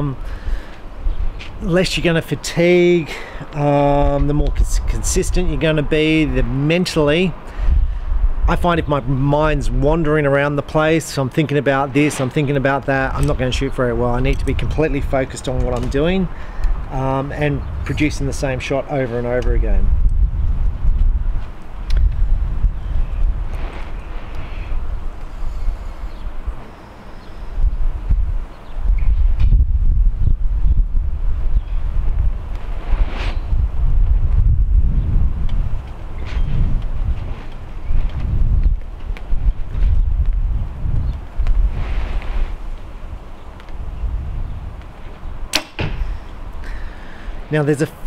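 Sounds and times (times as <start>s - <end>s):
wind buffeting microphone: 0.0s - 48.0s
bow shot crack: 45.5s - 46.2s.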